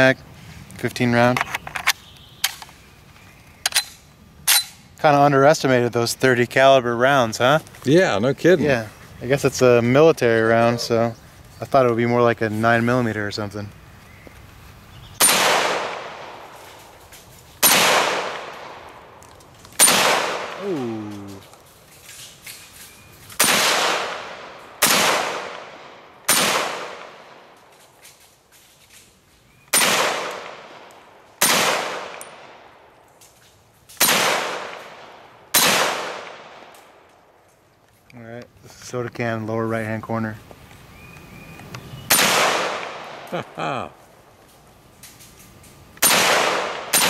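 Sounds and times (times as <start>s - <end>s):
rifle shots with echo: 15.2s - 16.6s, 17.6s - 19.1s, 19.8s - 20.6s, 23.4s - 27.6s, 29.7s - 32.9s, 34.0s - 36.7s, 42.1s - 43.3s, 46.0s - 47.0s.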